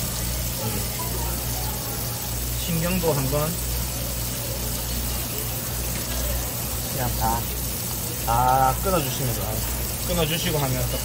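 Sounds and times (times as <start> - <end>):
hose water spraying onto fish: 0.0 - 11.0.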